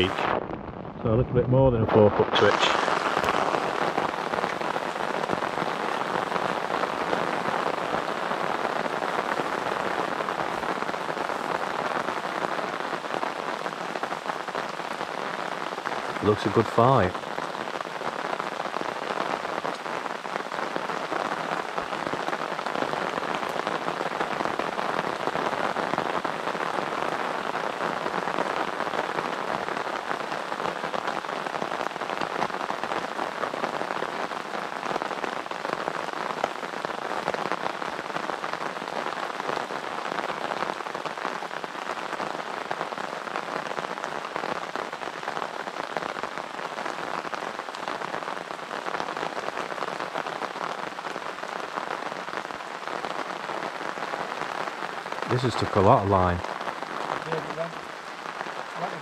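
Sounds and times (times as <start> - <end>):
heavy rain hissing: 0.0 - 59.0
raindrops hitting microphone: 0.0 - 59.0.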